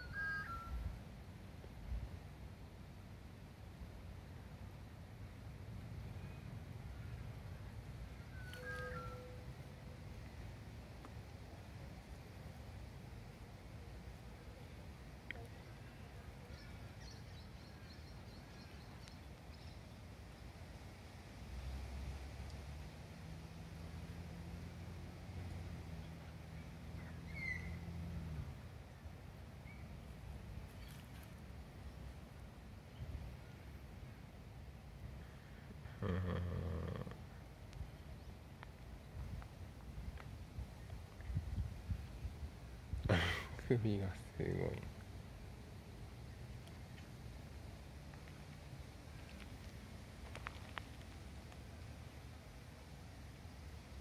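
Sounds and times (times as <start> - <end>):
thin high chirps: 8.4 - 9.4.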